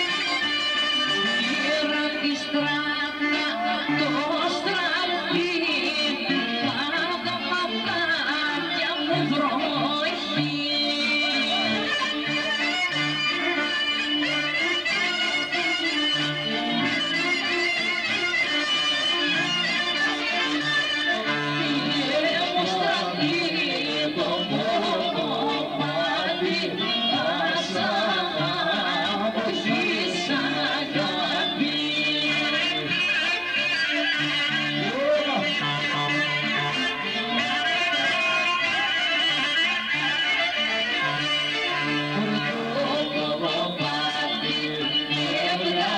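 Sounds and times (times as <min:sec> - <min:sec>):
clarinet lead: 0:00.0 - 0:04.3, 0:09.2 - 0:45.9
electric guitar and keyboard: 0:00.0 - 0:45.9
clarinet melody: 0:10.6 - 0:23.1.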